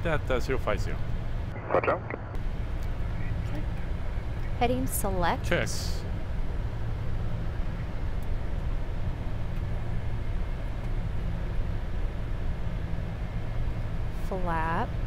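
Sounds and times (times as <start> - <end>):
low engine hum: 0.0 - 15.0.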